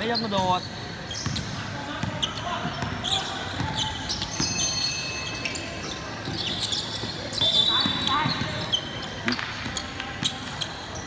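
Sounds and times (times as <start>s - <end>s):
sneaker squeaks: 0.0s - 11.0s
spectators talking: 0.0s - 11.0s.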